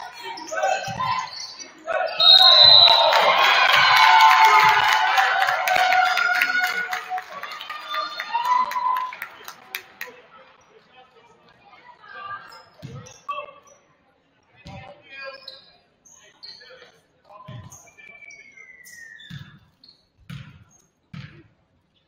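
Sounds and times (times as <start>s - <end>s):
crowd shouting and cheering: 0.0s - 10.1s
referee whistle blast: 2.2s - 3.3s.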